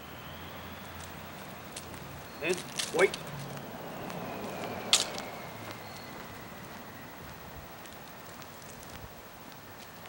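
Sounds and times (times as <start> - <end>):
footsteps on asphalt: 0.8 - 10.0.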